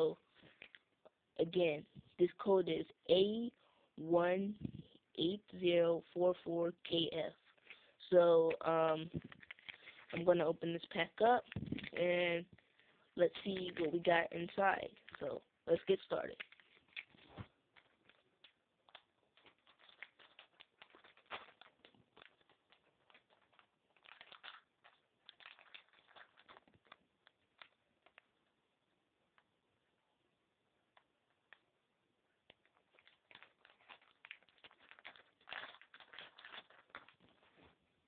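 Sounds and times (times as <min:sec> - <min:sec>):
foil packet crinkling: 0:08.5 - 0:28.4, 0:32.5 - 0:37.8
plastic bag rustling: 0:09.1 - 0:10.3, 0:16.0 - 0:28.2, 0:32.6 - 0:37.8.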